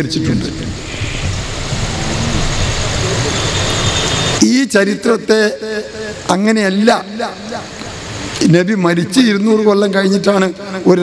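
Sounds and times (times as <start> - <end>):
man talking: 0.0 - 0.8, 4.4 - 7.7, 8.4 - 11.0
engine rumble with hiss: 0.0 - 11.0.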